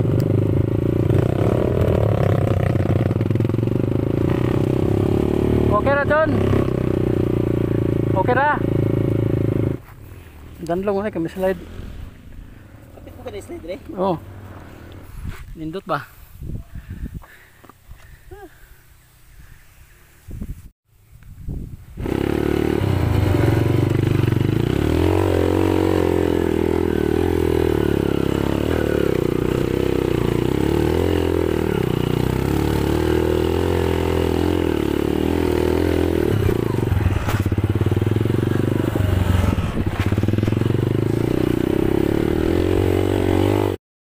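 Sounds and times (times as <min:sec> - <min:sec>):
dirt bike engine running: 0:00.0 - 0:11.6, 0:22.0 - 0:43.8.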